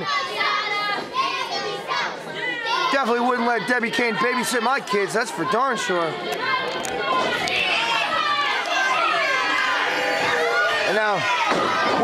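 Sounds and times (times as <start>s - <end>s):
children shouting: 0.0s - 12.0s.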